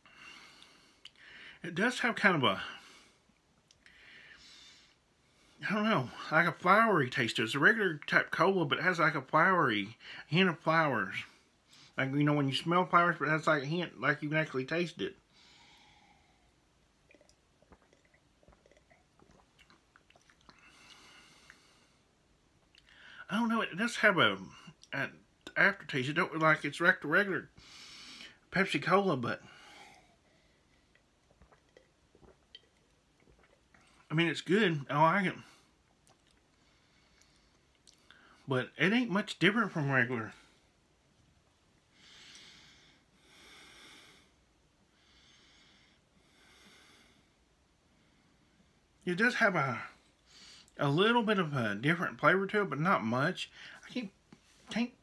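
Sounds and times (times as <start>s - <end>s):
man breathing: 0.0s - 1.6s, 3.8s - 5.6s, 15.3s - 16.6s, 27.6s - 28.5s, 29.4s - 30.8s, 41.9s - 48.8s, 49.9s - 50.8s
man swallowing: 17.0s - 21.0s, 30.9s - 34.0s
wet mouth clicks: 17.0s - 21.0s, 30.9s - 33.9s, 35.9s - 36.6s, 37.2s - 38.2s.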